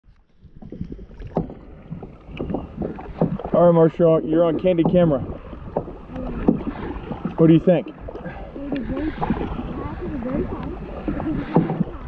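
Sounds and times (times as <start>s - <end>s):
kayak paddles splashing water: 0.1s - 12.0s.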